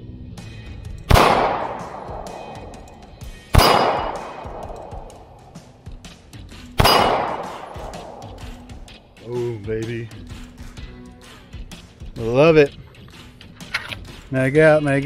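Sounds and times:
pistol shots: 1.1 - 5.7, 6.8 - 9.0
gunshot echo: 1.1 - 5.8, 6.8 - 9.0.

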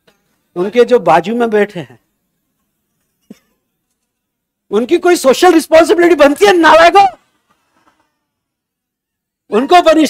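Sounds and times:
man speaking: 0.5 - 2.0, 4.7 - 7.2, 9.5 - 10.0.

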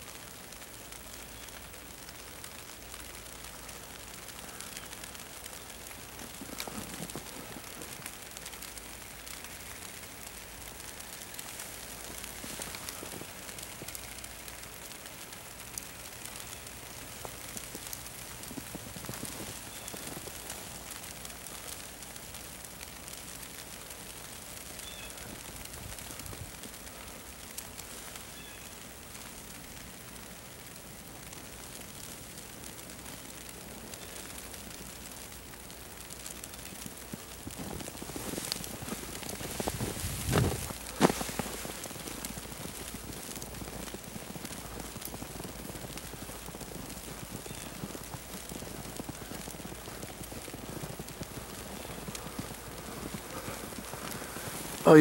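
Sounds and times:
snowflakes ticking: 0.0 - 55.0
soft hiss of falling snow: 0.0 - 55.0.

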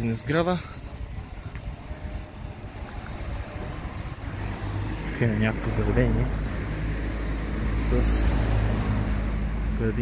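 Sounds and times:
town ambience rumble: 0.0 - 10.0.

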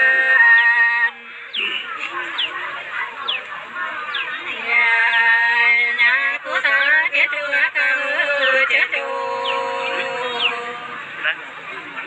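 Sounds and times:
woman singing folk song: 0.0 - 1.2, 4.5 - 11.0.

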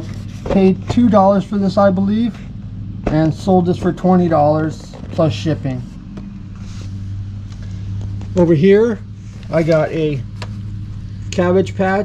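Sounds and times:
low motor hum: 0.0 - 12.0.

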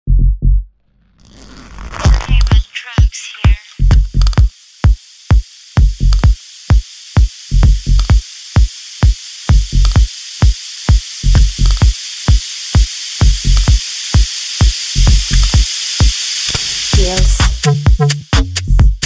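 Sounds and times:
four-on-the-floor kick drum: 0.1 - 0.6, 3.8 - 8.2, 9.0 - 12.0, 12.8 - 13.8, 15.0 - 15.7, 18.8 - 19.0
pitched synth line: 1.2 - 8.6
hissing noise sweep: 1.2 - 17.9.

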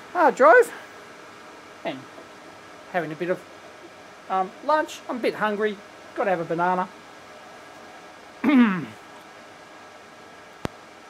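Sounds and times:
cooling fans hissing: 0.0 - 11.0
man clearing his throat: 8.4 - 9.0.

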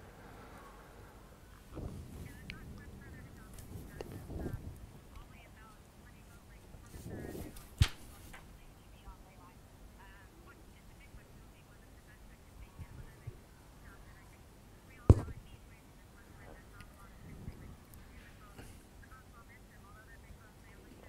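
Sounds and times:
faint wind: 0.0 - 21.0.

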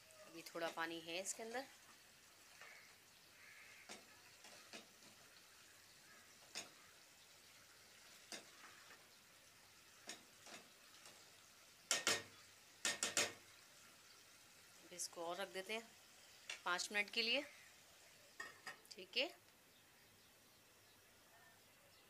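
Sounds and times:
faint sizzle of cooking meat: 0.0 - 22.0
spatula knocking against metal pot: 11.9 - 13.4.

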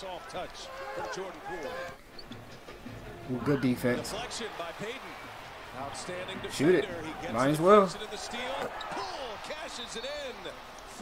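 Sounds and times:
broadcast commentary: 2.8 - 11.0.

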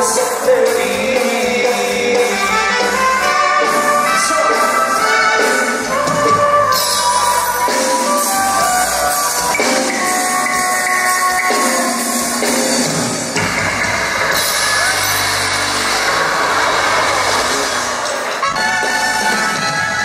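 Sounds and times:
live band playing dance music: 0.0 - 20.0.

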